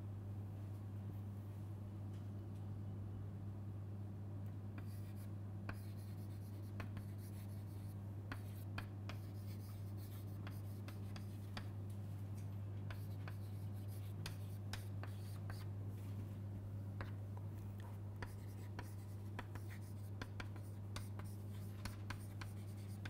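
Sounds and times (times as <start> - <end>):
steady low hum: 0.0 - 23.0
chalk tapping and scratching: 4.8 - 11.7, 12.9 - 15.7, 17.8 - 23.0.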